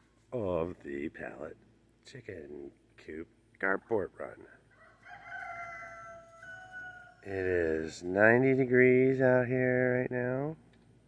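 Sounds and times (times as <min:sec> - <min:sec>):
rooster crowing: 0:04.7 - 0:07.4.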